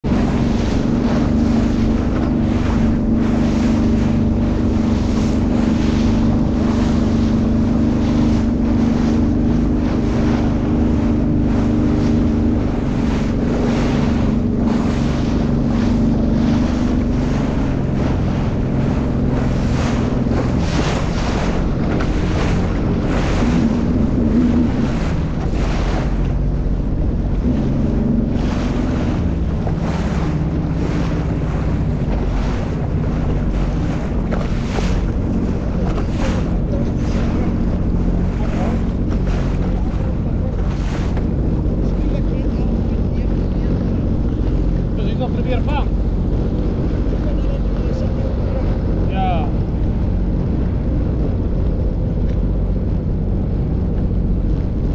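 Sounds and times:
jet ski engine running: 0.0 - 54.9
water slapping against hull: 0.0 - 54.9
wind buffeting microphone: 0.0 - 54.9.

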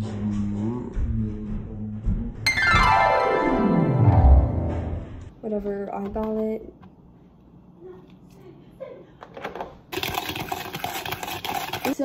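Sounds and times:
whisk clattering in plastic bowl: 9.9 - 12.0.

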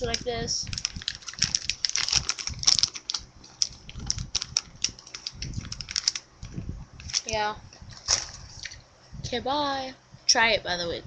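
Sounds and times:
plastic bag crinkling: 0.0 - 8.8.

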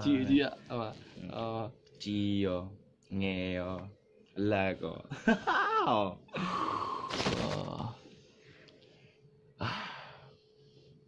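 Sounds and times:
person sighing: 6.4 - 8.0, 9.6 - 10.2.

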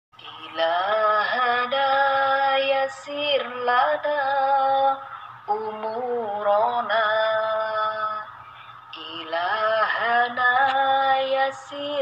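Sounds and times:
person singing devotional song: 0.2 - 12.0.

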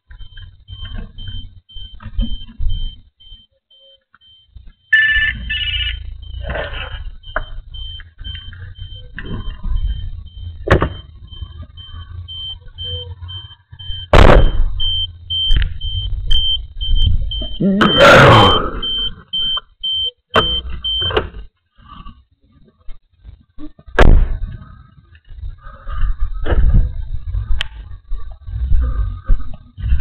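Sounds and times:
faint high pulsing tone: 0.0 - 21.0
loud thump: 10.6 - 11.0, 14.1 - 14.8, 24.0 - 24.4.

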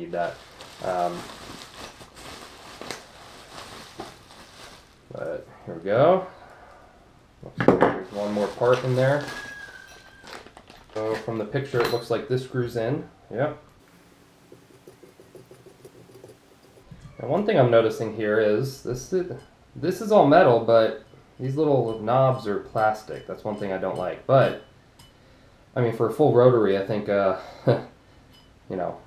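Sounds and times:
bubble wrap crackles: 0.0 - 5.2, 8.1 - 11.3
bubble wrap rustling: 0.0 - 5.2, 8.0 - 11.4.

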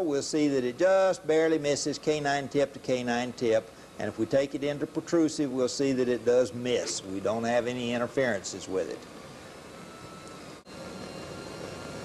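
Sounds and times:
background hiss: 0.0 - 10.4.

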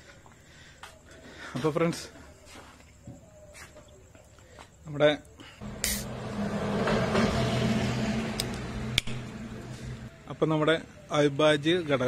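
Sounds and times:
low engine hum: 5.6 - 10.2
motor vehicle passing: 5.6 - 10.2.

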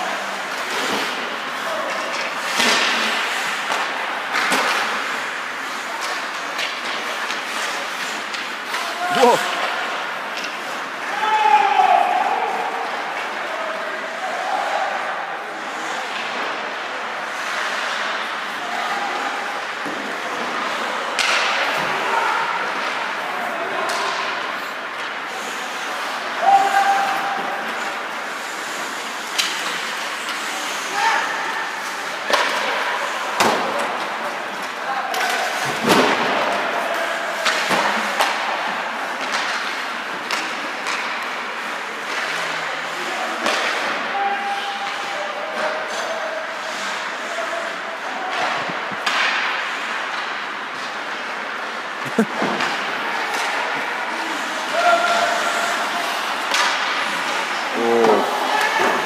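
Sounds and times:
puck and players banging boards: 0.0 - 13.5, 15.8 - 59.0
hum of rink hall: 0.0 - 59.0
players shouting: 8.7 - 10.1, 10.9 - 13.0, 52.8 - 59.0.

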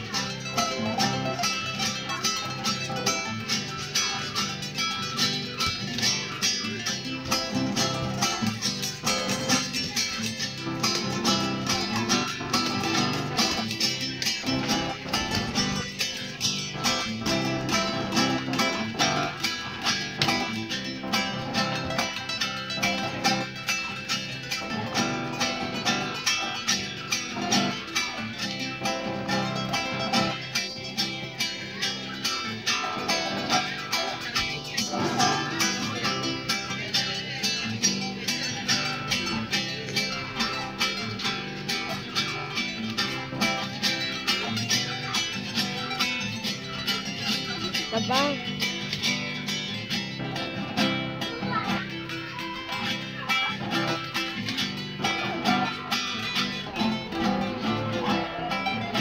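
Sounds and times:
acoustic guitar picking melody: 0.0 - 59.0
acoustic guitar strumming: 0.0 - 59.0.

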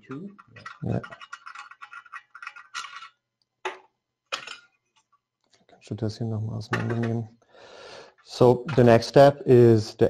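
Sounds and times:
metal parts clinking and clicking: 0.4 - 3.2.

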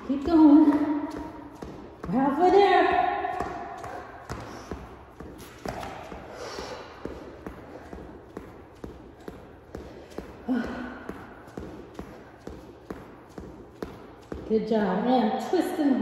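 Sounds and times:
hard breathing: 3.8 - 12.8.

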